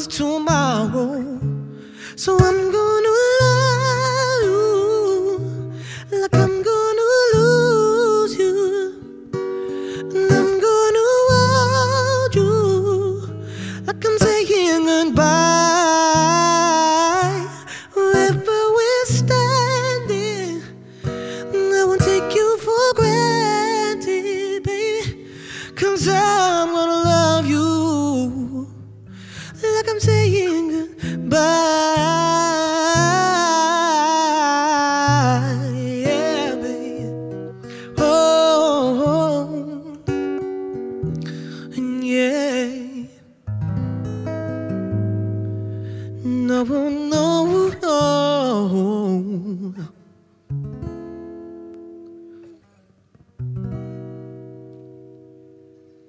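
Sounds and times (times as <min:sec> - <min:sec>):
man singing a soul-pop ballad: 0:00.0 - 0:43.5, 0:45.9 - 0:50.0
acoustic guitar: 0:00.0 - 0:56.0.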